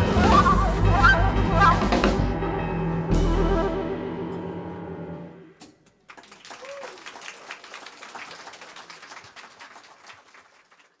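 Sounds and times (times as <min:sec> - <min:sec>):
audience applauding: 0:06.0 - 0:11.0.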